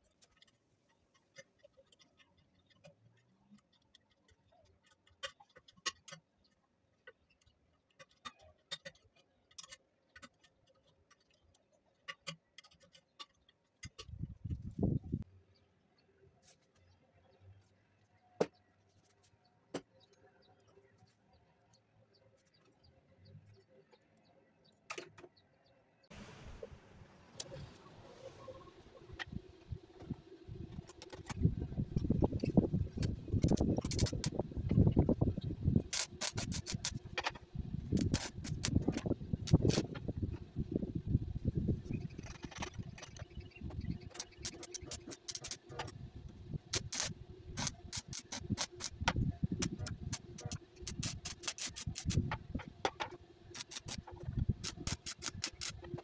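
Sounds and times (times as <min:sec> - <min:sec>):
steel rods clicking on wood: 0:32.0 - 0:35.1, 0:35.8 - 0:40.1, 0:44.0 - 0:46.0, 0:46.7 - 0:56.0.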